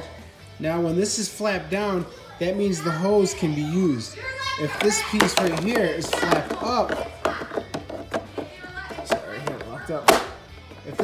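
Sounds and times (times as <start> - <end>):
faint background music: 0.0 - 11.0
plastic clicks and knocks: 4.8 - 10.3.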